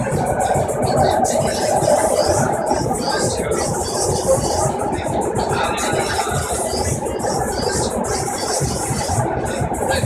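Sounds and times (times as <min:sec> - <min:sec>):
music playing: 0:00.0 - 0:10.0
train car running noise: 0:00.0 - 0:10.0.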